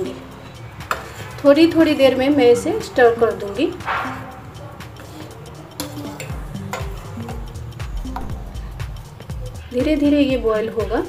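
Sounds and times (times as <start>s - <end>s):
background music with beat: 0.0s - 11.0s
spoon clinking against pan: 0.6s - 1.4s, 3.8s - 7.6s.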